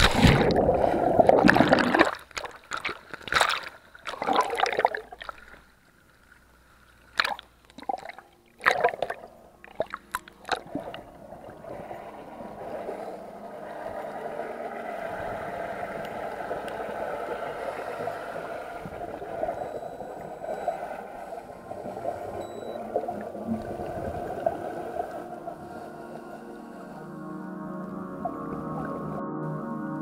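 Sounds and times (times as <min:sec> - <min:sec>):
underwater rushing hiss: 0:11.6 - 0:27.1.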